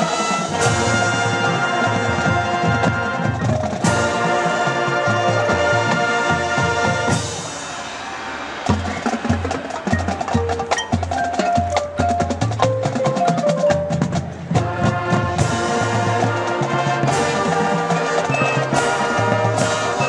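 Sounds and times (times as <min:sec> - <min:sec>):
brass chord: 0:00.0 - 0:07.3, 0:13.6 - 0:20.0
marching band playing: 0:00.0 - 0:20.0
rapid drum strokes: 0:00.0 - 0:20.0
mallet keyboard notes: 0:09.9 - 0:14.9.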